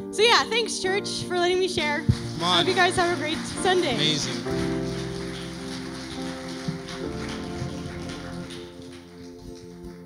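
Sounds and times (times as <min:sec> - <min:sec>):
soft keyboard chords: 0:00.0 - 0:10.0.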